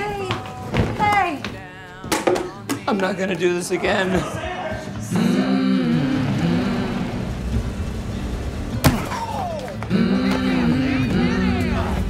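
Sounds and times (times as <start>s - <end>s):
car road and engine noise: 5.1s - 9.0s.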